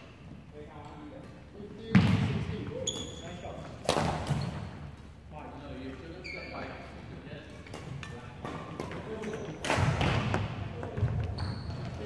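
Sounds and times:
shoe squeak: 2.7 - 3.7, 4.3 - 4.7, 6.1 - 6.8, 11.3 - 12.0.

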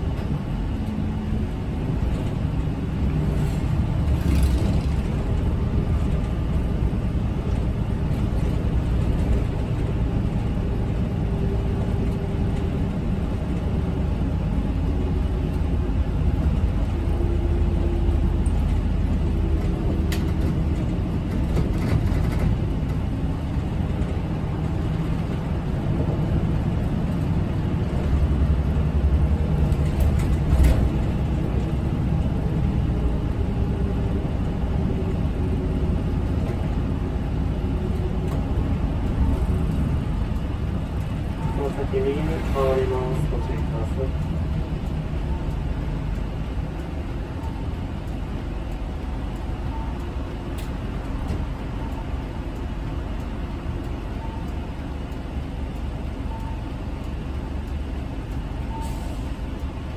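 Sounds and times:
bus engine and road rumble: 0.0 - 59.9.

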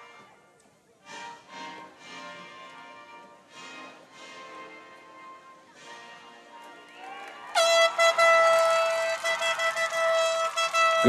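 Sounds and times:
faint music: 0.0 - 7.6
air horn blast: 7.6 - 11.0.

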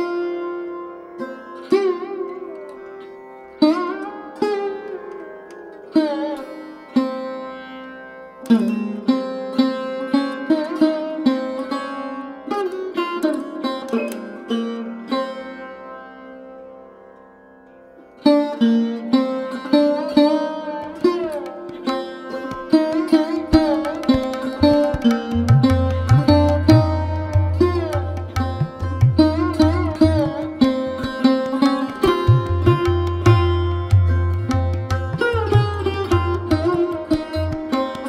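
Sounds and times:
plucked string instrument: 0.0 - 38.0.

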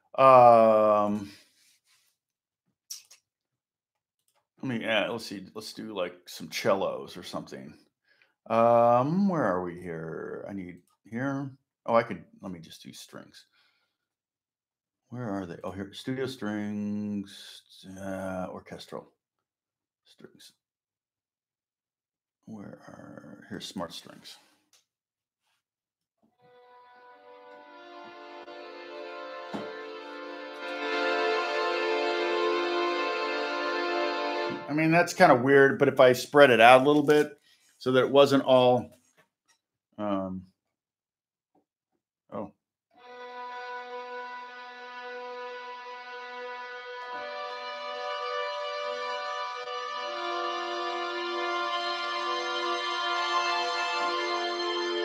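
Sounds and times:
sustained string chord: 26.5 - 34.7, 43.0 - 55.0.

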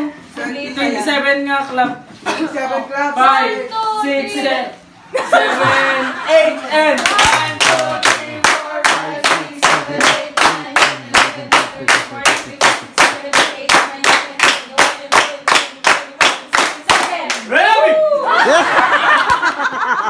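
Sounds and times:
group clapping in unison: 6.9 - 17.5.

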